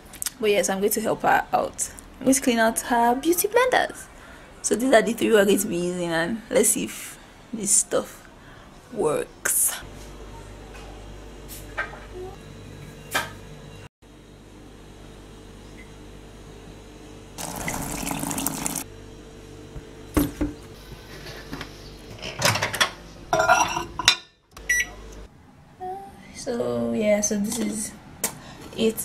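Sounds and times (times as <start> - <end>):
water pouring into a mug: 17.4 - 18.9
microwave keypad beep: 24.6 - 25.0.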